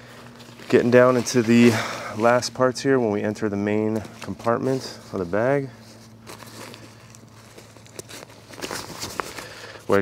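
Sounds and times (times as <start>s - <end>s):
backpack fabric rustling: 0.0s - 10.0s.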